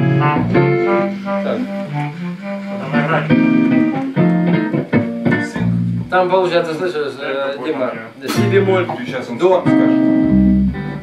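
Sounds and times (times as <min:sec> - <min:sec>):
clarinet melody: 0:00.0 - 0:06.1
electric guitar accompaniment: 0:00.0 - 0:06.7, 0:08.3 - 0:11.0.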